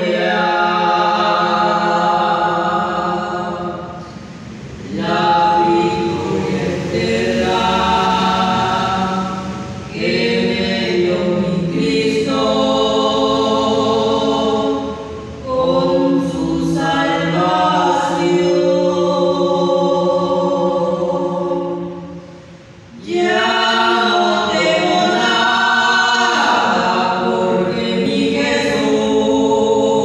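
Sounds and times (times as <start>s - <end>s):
group singing a hymn: 0.0s - 30.0s.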